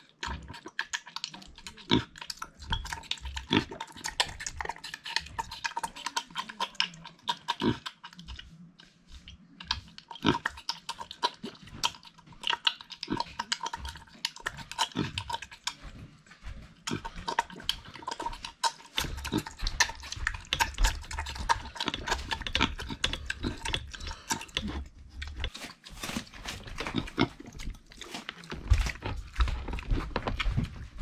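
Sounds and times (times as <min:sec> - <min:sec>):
pig eating from metal bowl: 0:00.0 - 0:31.0.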